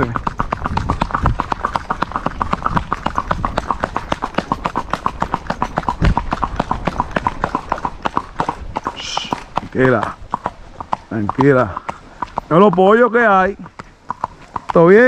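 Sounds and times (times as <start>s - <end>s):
hooves on asphalt: 0.0s - 15.0s.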